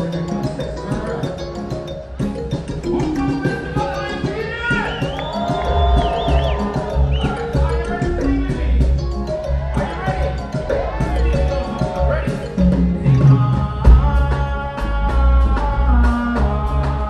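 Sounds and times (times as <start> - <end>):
reggae band playing: 0.0 - 17.0
vocalist on a microphone: 0.0 - 17.0
deep bass line: 2.2 - 17.0.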